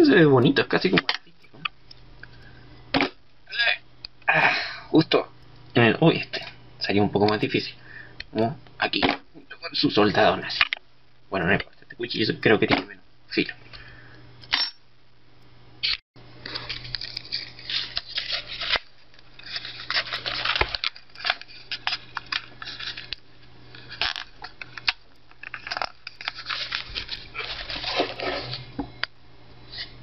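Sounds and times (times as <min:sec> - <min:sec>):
faint steady hum: 0:00.0 - 0:30.0
paper tearing and rustling: 0:16.5 - 0:23.1, 0:25.5 - 0:28.7.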